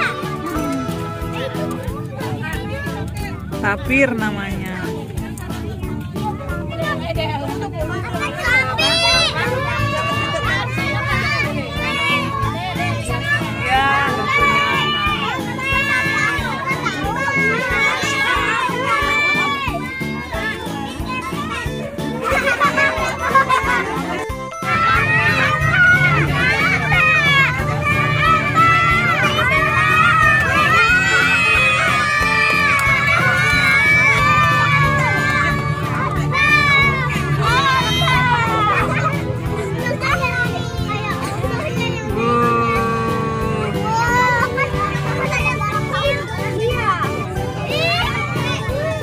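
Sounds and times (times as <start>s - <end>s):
children chattering and calling out: 0.0s - 49.0s
music playing: 0.0s - 49.0s.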